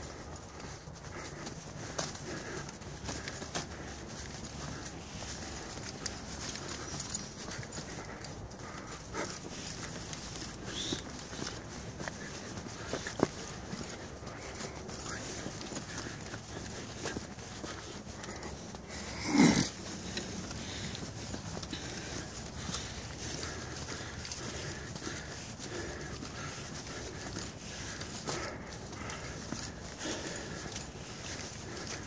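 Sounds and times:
footsteps on dirt trail: 0.0 - 32.0.

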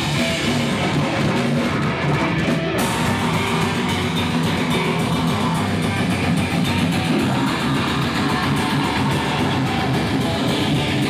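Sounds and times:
electric guitar playing: 0.0 - 11.0
heavy metal music: 0.0 - 11.0.

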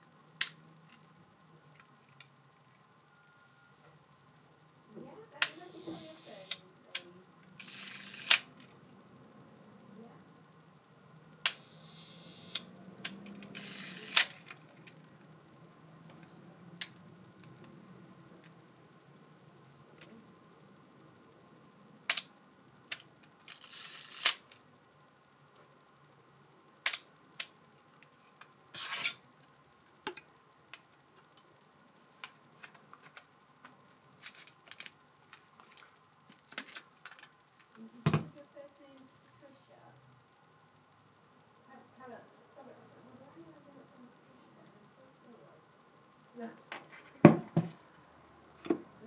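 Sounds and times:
sharp camera shutter clicks: 5.4 - 6.6, 7.6 - 8.6, 11.5 - 14.5
camera winding rasp: 7.6 - 8.5, 13.3 - 14.4
camera shutter clicks: 13.5 - 14.4.

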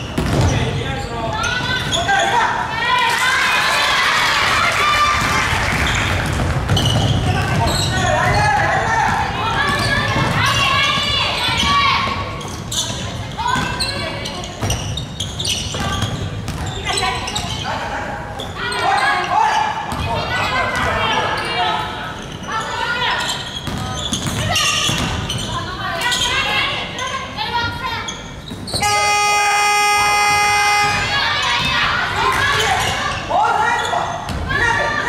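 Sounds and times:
players shouting: 28.8 - 33.6.

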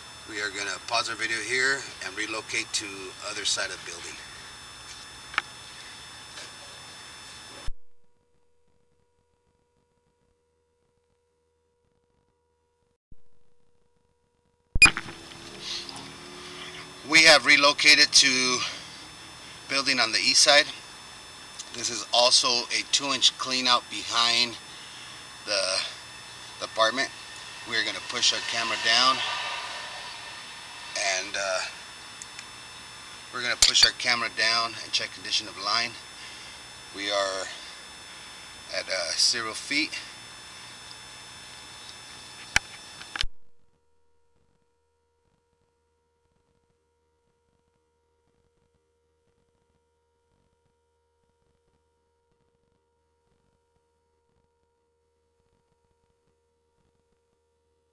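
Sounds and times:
faint constant whines: 0.0 - 57.9
faint electrical hum: 0.0 - 57.9
high electronic beep: 14.8 - 15.1
sharp click: 14.8 - 15.2
electrical hiss: 14.8 - 43.2.

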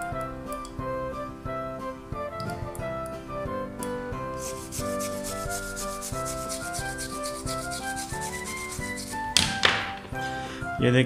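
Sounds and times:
background piano music: 0.0 - 11.0
toothbrush scrubbing circuit board: 4.3 - 9.4.

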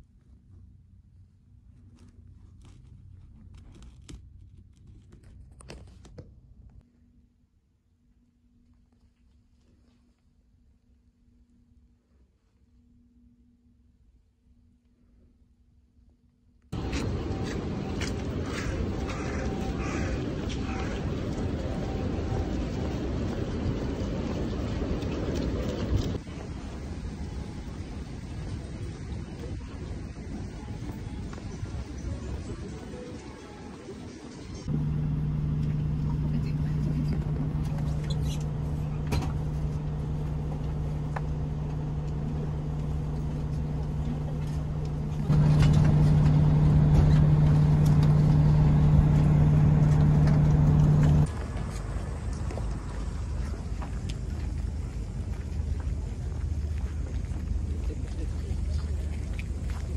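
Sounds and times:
low rumbling outdoor noise: 0.0 - 59.9
bus engine drone: 16.7 - 59.9.

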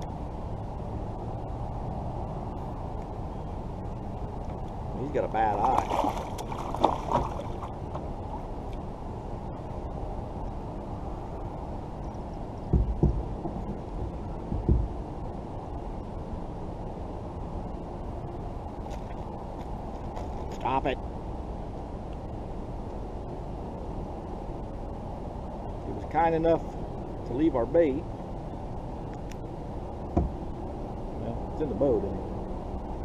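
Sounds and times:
steady low rumble: 0.0 - 33.0
dull thumps in a kayak: 12.7 - 15.0, 30.1 - 30.4.

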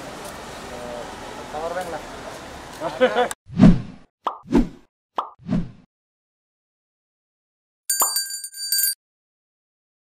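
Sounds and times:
pop sound effects: 4.2 - 4.6, 5.2 - 5.4
notification bell chime: 7.9 - 9.0.

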